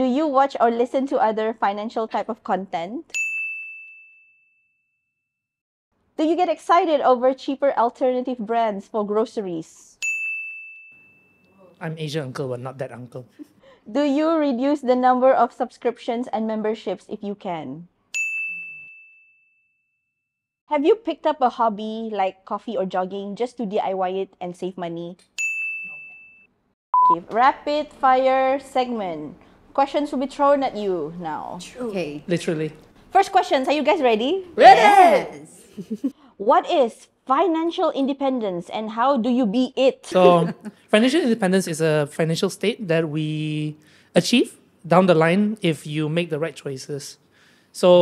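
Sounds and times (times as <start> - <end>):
bell-like ding: 3.1 - 4.8, 10.0 - 11.6, 18.1 - 19.6, 25.4 - 26.5
low steady beep: 25.6 - 27.2.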